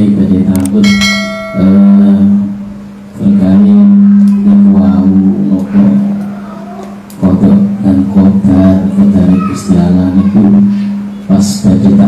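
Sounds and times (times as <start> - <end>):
man chanting over microphone: 0.0 - 6.4, 7.2 - 12.0
bright metallic ring: 0.8 - 2.6.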